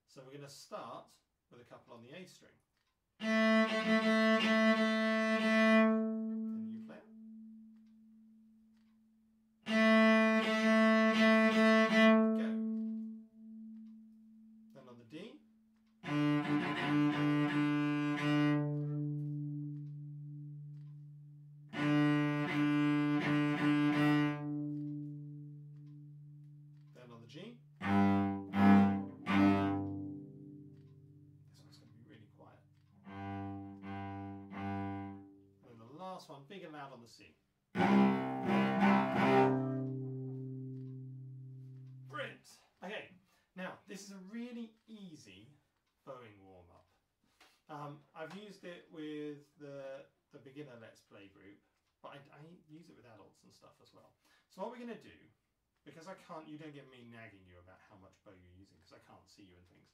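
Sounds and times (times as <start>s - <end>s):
cello bowed phrases: 3.2s - 7.9s, 9.6s - 15.4s, 16.0s - 35.5s, 37.8s - 42.3s.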